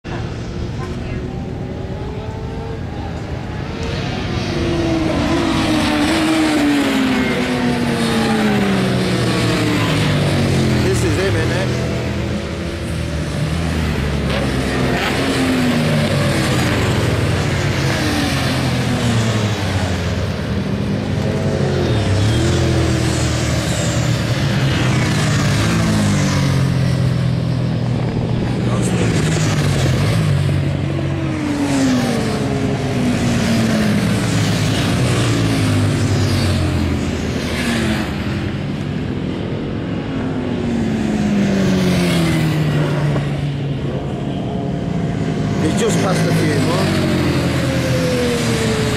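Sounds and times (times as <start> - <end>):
racing motorcycles passing: 0.1 - 48.9.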